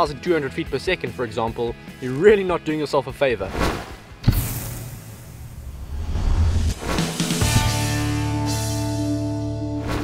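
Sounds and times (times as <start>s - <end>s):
low rumble: 4.8s - 6.9s.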